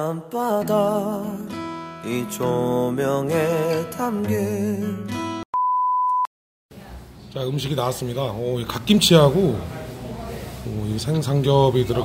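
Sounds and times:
man singing: 0:00.0 - 0:05.3
acoustic guitar: 0:00.0 - 0:05.4
high electronic beep: 0:05.6 - 0:06.3.

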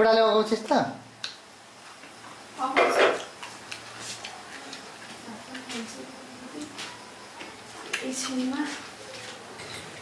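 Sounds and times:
woman's voice: 0:08.0 - 0:08.9.

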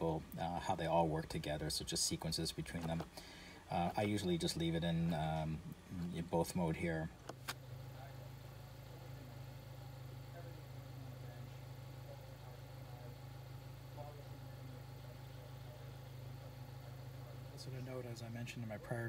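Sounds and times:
car engine idling: 0:07.2 - 0:19.0.

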